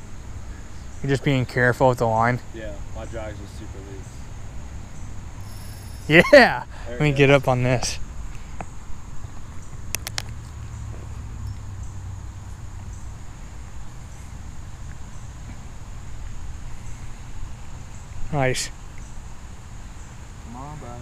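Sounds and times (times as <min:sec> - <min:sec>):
high-pitched insect buzz: 0:02.7 - 0:21.0
sharp clicks: 0:09.9 - 0:10.4.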